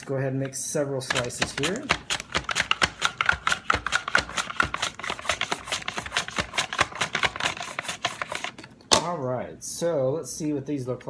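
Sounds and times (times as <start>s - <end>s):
potato slicing on mandoline: 1.0s - 8.7s.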